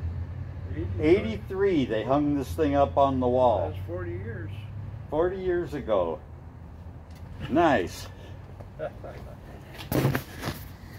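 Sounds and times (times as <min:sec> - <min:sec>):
person laughing: 0:08.7 - 0:09.5.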